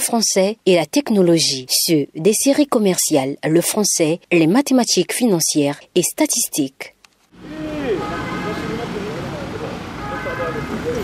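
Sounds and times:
outdoor background noise: 0.0s - 11.0s
cars driving off: 7.4s - 11.0s
indistinct voices talking: 7.4s - 11.0s.

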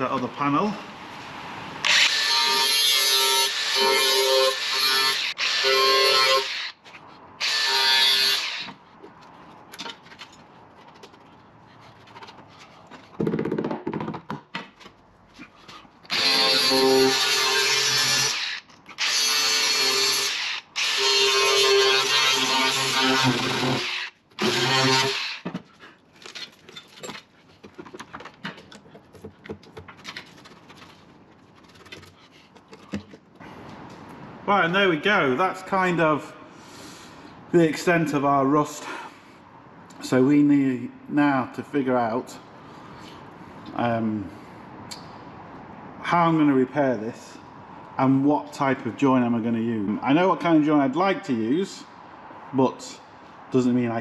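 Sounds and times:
angle grinder cutting steel: 1.8s - 6.8s, 7.4s - 8.8s, 16.1s - 25.4s.

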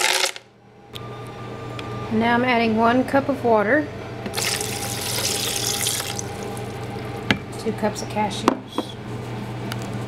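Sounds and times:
water pouring into blender jar: 4.4s - 6.8s.

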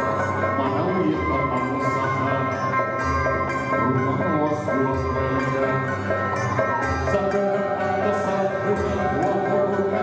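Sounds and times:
plucked-string ceremonial music: 0.0s - 10.0s.

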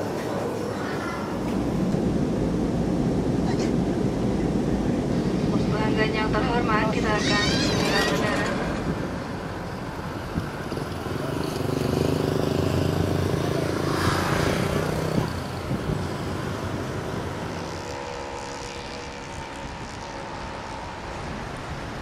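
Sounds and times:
street noise: 0.0s - 22.0s
vehicle passing: 6.5s - 22.0s.

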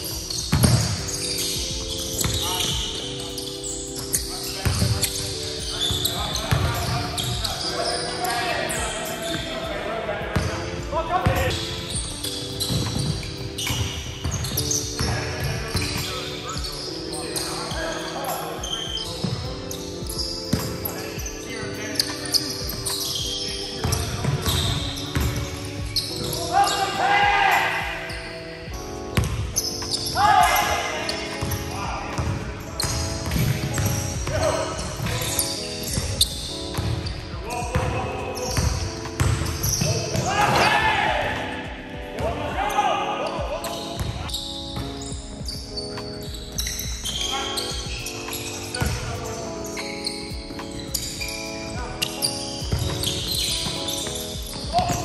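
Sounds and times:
players' voices: 0.0s - 55.0s
basketball bouncing on wooden floor: 0.4s - 1.0s, 32.2s - 34.4s, 38.6s - 40.3s, 52.6s - 55.0s.

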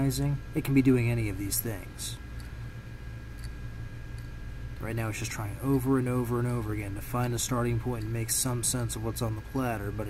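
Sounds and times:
hard drive hum: 0.0s - 10.0s.

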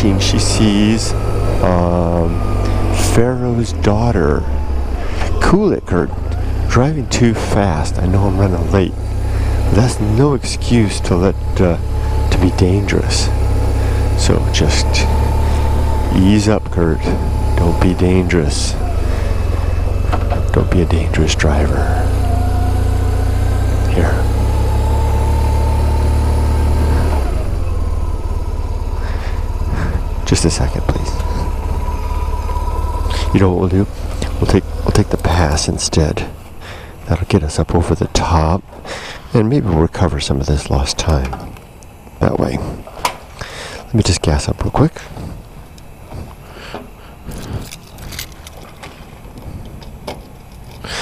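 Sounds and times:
low background hum: 0.0s - 51.0s
motorcycle engine rumbling: 0.0s - 51.0s
handling clicks and scrapes: 45.8s - 51.0s.

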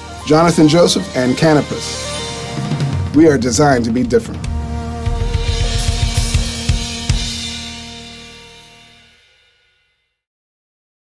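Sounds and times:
drum kit playing: 0.0s - 9.7s.

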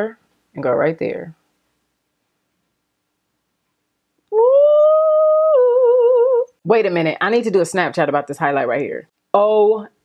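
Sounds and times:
woman humming: 4.3s - 6.6s.

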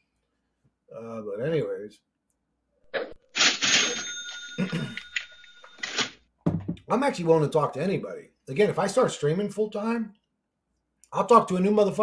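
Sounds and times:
high ringing tone: 3.8s - 5.8s.

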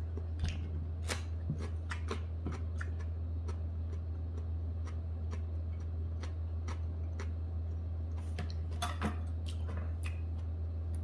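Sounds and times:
crunchy chewing of chili pepper: 0.0s - 11.0s
steady low hum: 0.0s - 11.0s.

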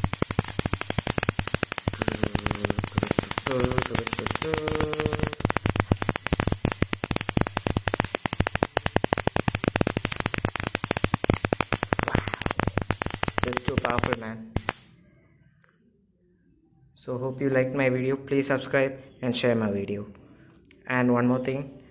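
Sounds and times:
high-pitched whine: 0.0s - 15.0s
spark gap crackling snaps: 0.0s - 15.0s.

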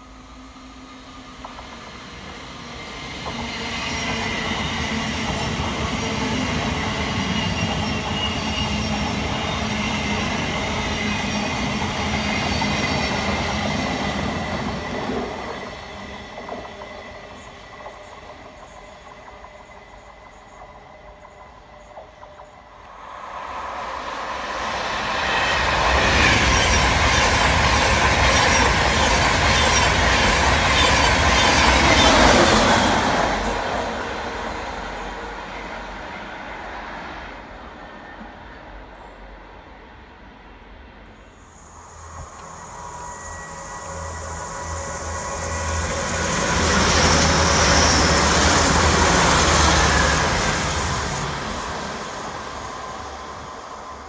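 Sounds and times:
train passing at speed: 0.0s - 54.0s
electric train traction whine: 41.2s - 54.0s.

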